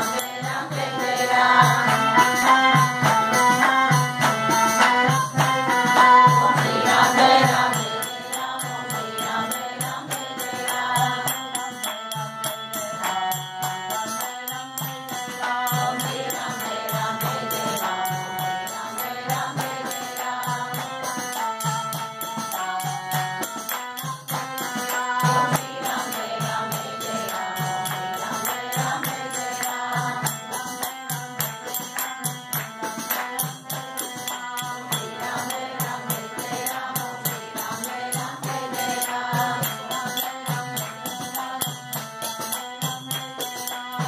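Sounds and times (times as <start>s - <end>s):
devotional chanting voices: 0.0s - 44.0s
harmonium sustained notes: 0.0s - 44.0s
rhythmic percussion beat: 0.0s - 44.0s.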